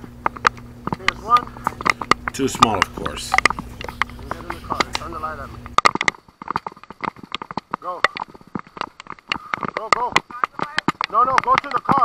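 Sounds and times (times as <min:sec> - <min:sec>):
rapid taps and knocks: 0:00.0 - 0:12.0.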